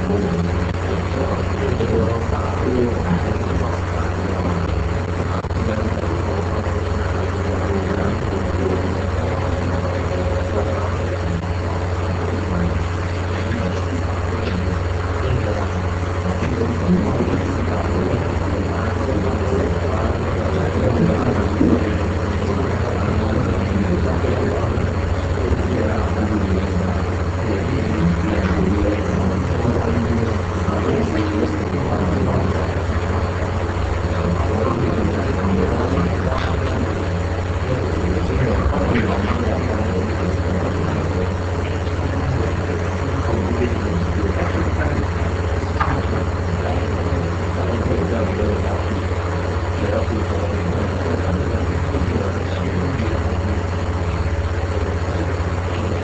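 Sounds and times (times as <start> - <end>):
noisy hiss: 0.0 - 56.0
steady low hum: 0.0 - 56.0.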